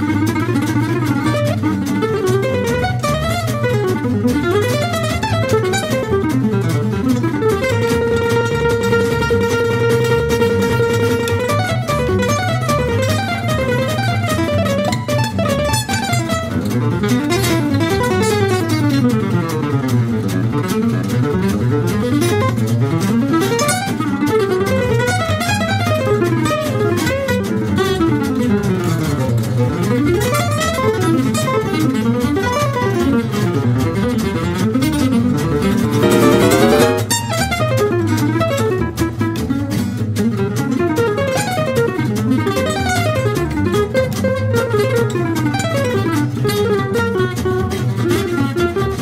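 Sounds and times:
double bass accompaniment: 0.0 - 49.0
fast acoustic guitar solo: 0.0 - 49.0.

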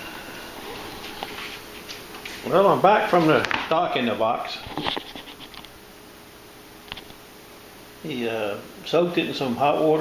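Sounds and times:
faint scratching and rustling: 0.4 - 3.4, 4.6 - 5.7.

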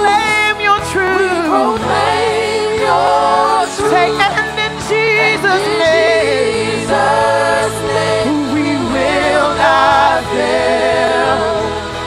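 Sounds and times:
backing singers: 0.0 - 12.0
woman singing lead: 0.0 - 12.0.

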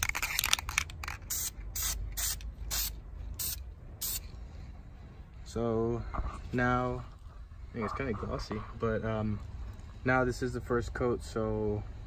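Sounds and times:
aerosol spray can hissing: 1.3 - 4.2.

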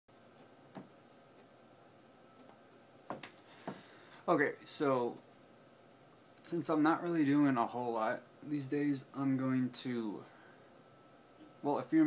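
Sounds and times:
faint steady hiss: 0.1 - 12.0.

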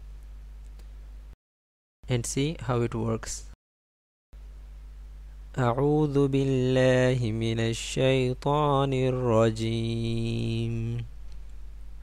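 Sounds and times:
man chanting: 5.5 - 11.1.

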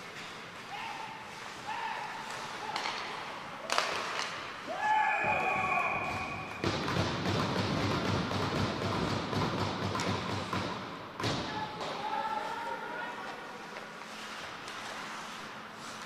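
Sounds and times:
hockey sticks and puck knocking: 2.2 - 4.6, 5.4 - 12.1
person shouting: 4.7 - 6.4.

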